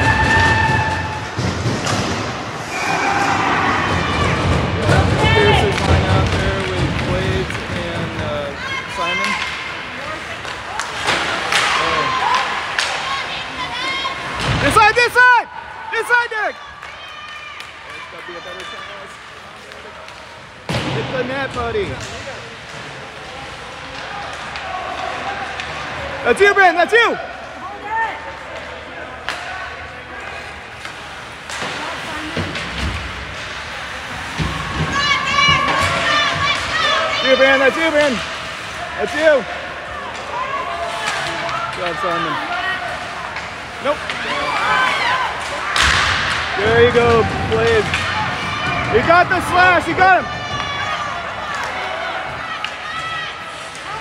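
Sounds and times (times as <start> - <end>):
people shouting: 2.6 - 5.8, 34.2 - 54.0.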